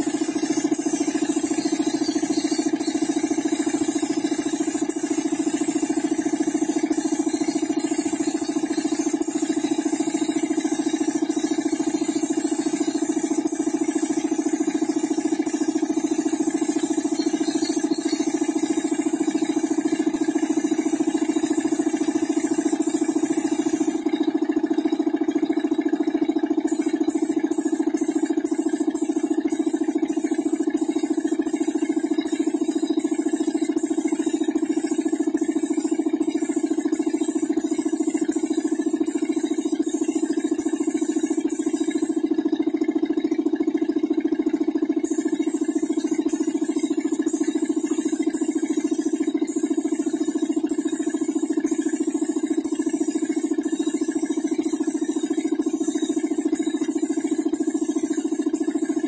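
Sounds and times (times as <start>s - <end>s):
spray gun hissing: 0.0s - 24.0s, 26.7s - 42.2s, 45.0s - 59.0s
steady mechanical hum: 0.0s - 58.9s.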